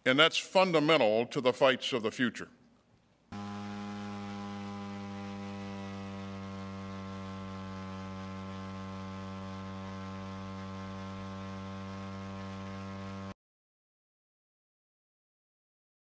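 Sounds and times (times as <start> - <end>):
steady hum: 3.4 - 13.4.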